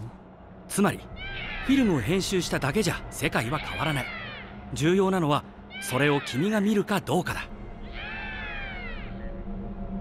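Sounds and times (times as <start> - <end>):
soft background music: 0.0 - 10.0
cat meowing: 7.9 - 9.1.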